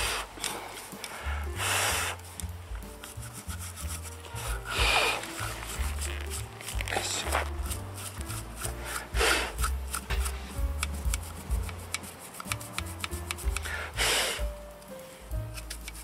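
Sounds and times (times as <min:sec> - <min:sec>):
stiff brush scrubbing metal: 0:00.0 - 0:14.6, 0:15.3 - 0:16.0
background music with bass line: 0:00.0 - 0:16.0.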